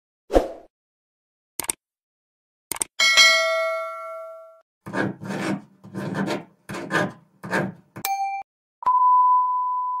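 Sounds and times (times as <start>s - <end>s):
click: 2.7s - 2.9s
rasping bursts: 4.8s - 8.0s
short beep: 8.8s - 10.0s.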